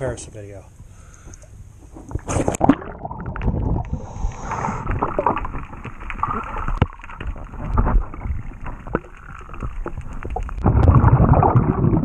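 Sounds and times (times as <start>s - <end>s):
muffled underwater water rush: 1.9s - 12.0s.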